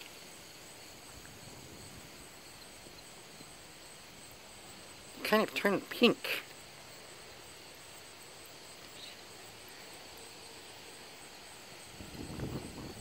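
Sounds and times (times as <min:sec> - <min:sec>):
crickets chirping: 0:00.0 - 0:13.0.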